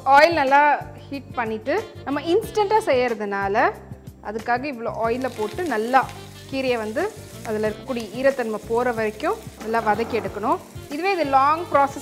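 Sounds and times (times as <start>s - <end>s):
leaves sizzling in hot oil: 4.9s - 12.0s.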